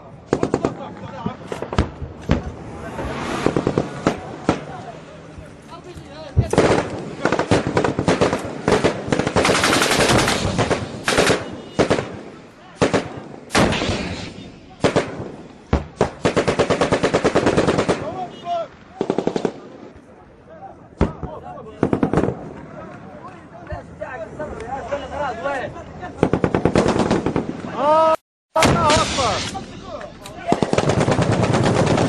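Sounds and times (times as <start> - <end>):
single gunshots: 6.4 - 18.3, 28.6 - 32.0
automatic gunfire: 6.5 - 14.2, 16.0 - 18.2, 30.4 - 32.0.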